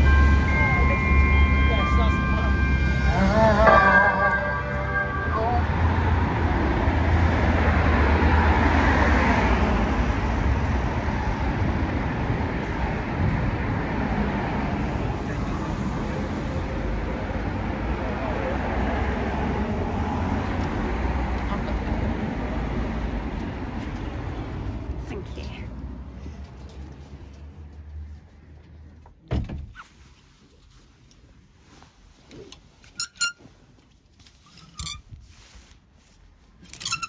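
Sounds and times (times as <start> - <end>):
christmas music over loudspeakers: 0.0 - 6.6
vehicle passing: 0.0 - 28.6
street traffic noise: 0.0 - 37.0.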